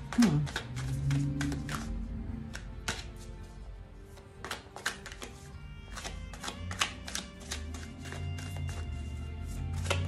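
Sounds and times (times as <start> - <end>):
card snap: 0.0 - 3.2, 4.4 - 8.8
cards shuffling and slapping: 0.0 - 10.0
soft music with low bass: 0.0 - 10.0.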